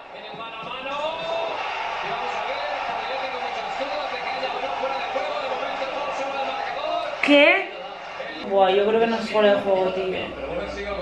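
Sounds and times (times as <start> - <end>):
man commentating: 0.0 - 7.2
stadium crowd noise: 0.0 - 11.0.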